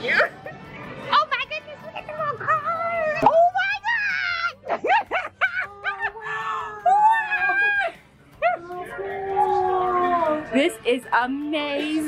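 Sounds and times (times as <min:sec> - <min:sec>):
woman squealing and screaming: 0:05.5 - 0:08.6.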